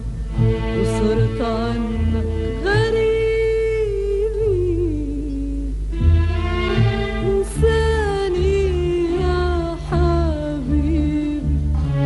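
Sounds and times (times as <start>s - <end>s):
steady bass: 0.0s - 12.0s.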